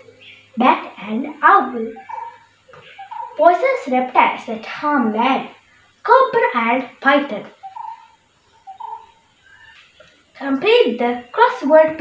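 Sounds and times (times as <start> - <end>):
faint bird calls: 0.0 - 3.9, 7.4 - 10.4.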